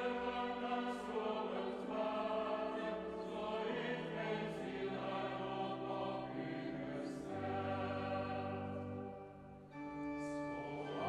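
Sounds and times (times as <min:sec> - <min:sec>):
choir singing a cappella: 0:00.0 - 0:11.0.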